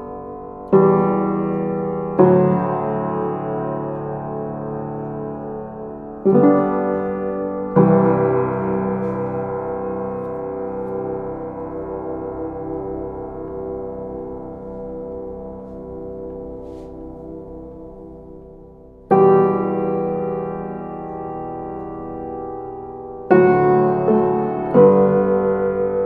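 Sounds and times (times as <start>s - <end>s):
piano chord ringing: 0.0s - 26.0s.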